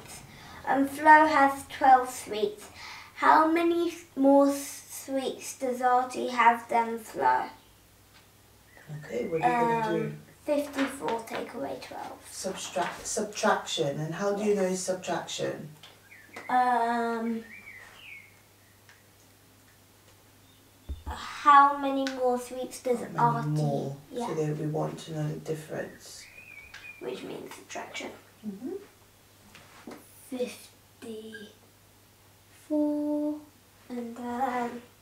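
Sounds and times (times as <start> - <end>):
steady low hum: 0.0 - 5.0
person humming: 28.4 - 28.8.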